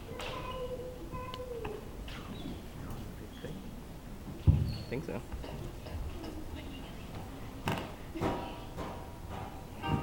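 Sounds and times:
children calling in a hall: 0:00.0 - 0:02.7.

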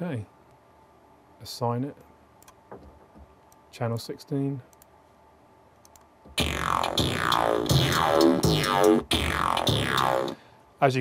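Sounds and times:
sampled bass with pitch sweeps: 0:06.4 - 0:10.4.

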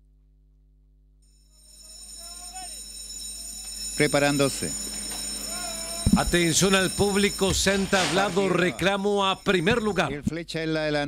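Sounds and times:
distant rising and falling call: 0:01.5 - 0:08.2
high-pitched electrical whine: 0:02.4 - 0:10.2.

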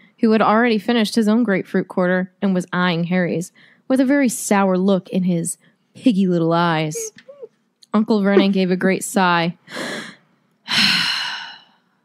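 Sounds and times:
woman sighing: 0:07.0 - 0:07.5.

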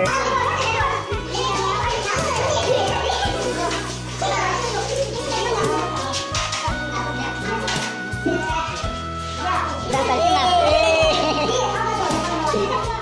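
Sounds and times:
background music with low notes: 0:00.0 - 0:13.0
chatter of students: 0:00.0 - 0:13.0.

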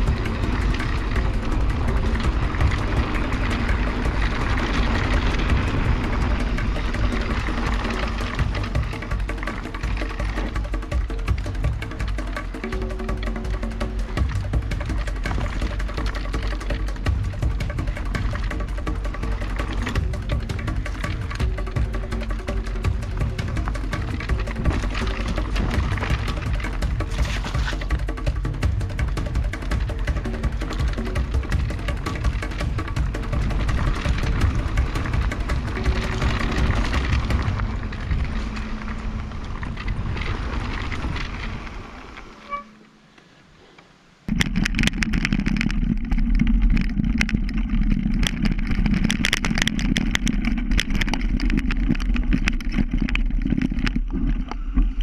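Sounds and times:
background music: 0:00.0 - 0:40.6
mountain bike rattling over rough trail: 0:00.0 - 0:55.0.

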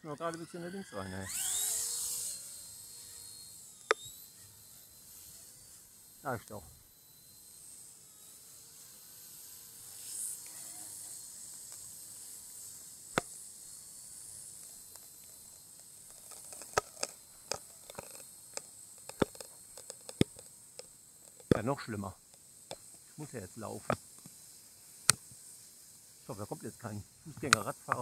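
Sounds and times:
model helicopter whine: 0:00.0 - 0:28.0
twigs cracking underfoot: 0:16.0 - 0:21.8.

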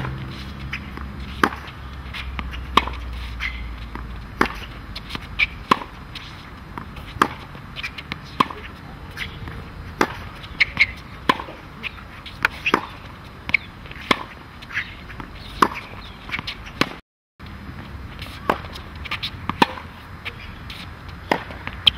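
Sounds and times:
tennis ball struck by racket: 0:00.0 - 0:17.0, 0:18.2 - 0:20.0, 0:20.7 - 0:21.9
footsteps on court: 0:00.0 - 0:21.9.

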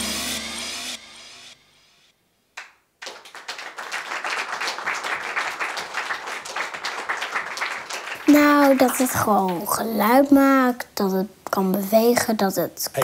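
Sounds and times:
audience applauding: 0:02.6 - 0:09.8.

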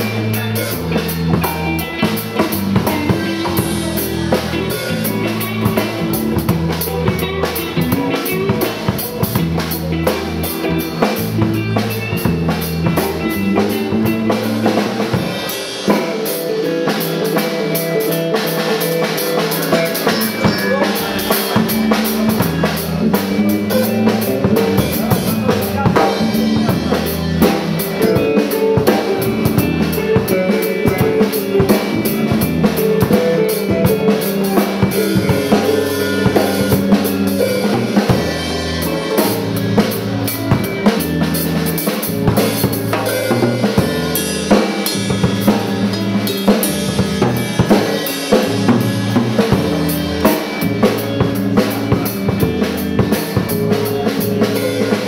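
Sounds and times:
bass guitar: 0:00.0 - 0:55.0
drum kit beat: 0:00.0 - 0:55.0
electric guitar: 0:00.0 - 0:55.0.

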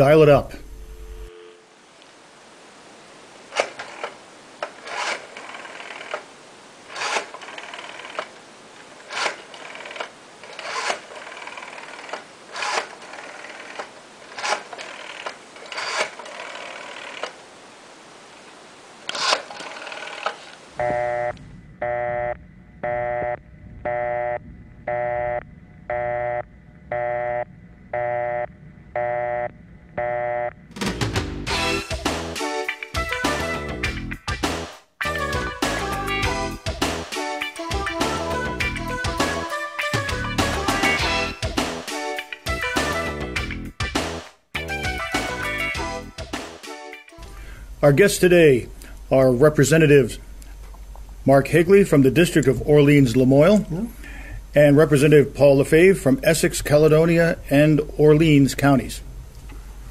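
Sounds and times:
pulsing telephone tone: 0:00.6 - 0:01.8, 0:20.8 - 0:30.6
rotary dial clicking: 0:03.6 - 0:06.2, 0:06.9 - 0:08.3, 0:09.1 - 0:17.4.

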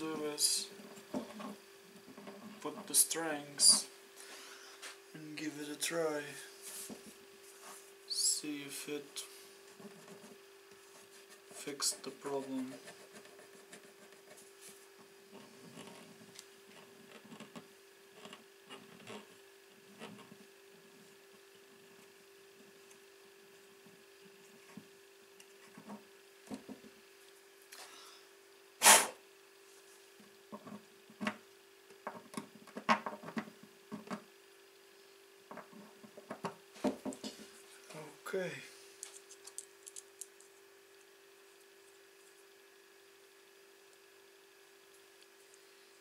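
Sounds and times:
faint hum: 0:00.0 - 0:46.0.

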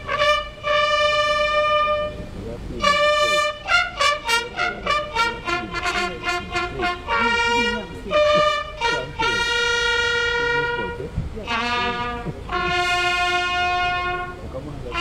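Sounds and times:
brass band playing slow melody: 0:00.0 - 0:15.0.

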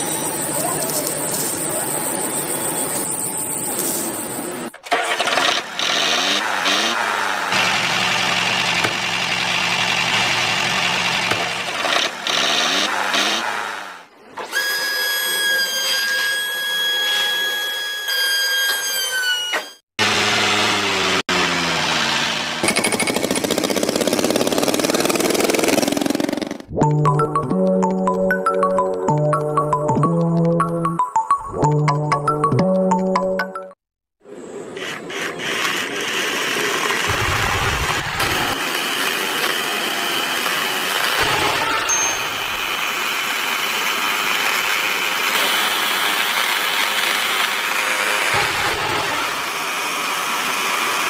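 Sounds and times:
model tractor engine revving: 0:04.7 - 0:14.1, 0:20.0 - 0:26.7, 0:42.8 - 0:51.0.

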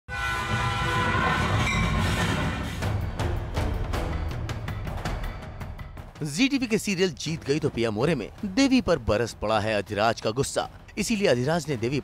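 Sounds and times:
train whistle: 0:00.1 - 0:02.8.

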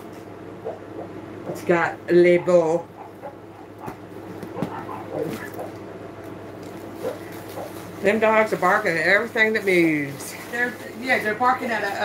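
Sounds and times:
dogs barking: 0:00.6 - 0:05.9, 0:06.8 - 0:08.0
people talking: 0:01.5 - 0:02.9, 0:08.0 - 0:12.0.

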